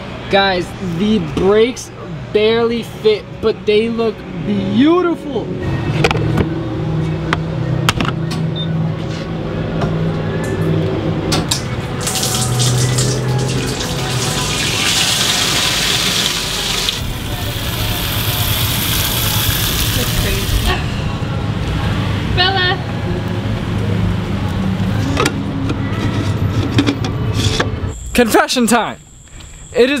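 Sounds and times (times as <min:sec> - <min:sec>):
fuel pouring into a can: 0:12.0 - 0:17.0.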